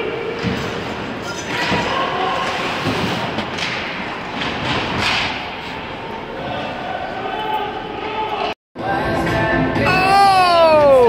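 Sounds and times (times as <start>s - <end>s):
pucks and sticks hitting boards: 0.3s - 5.6s.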